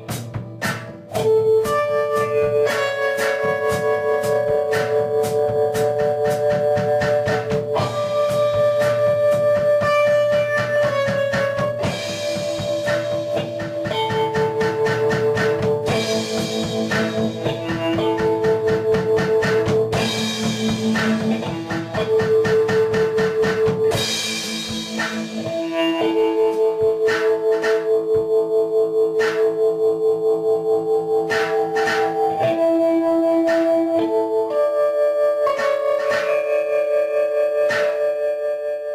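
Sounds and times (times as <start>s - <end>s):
steady drum beat: 0.0s - 28.4s, 29.2s - 29.6s, 31.2s - 32.7s, 33.4s - 34.2s
guitar chords: 0.0s - 38.9s.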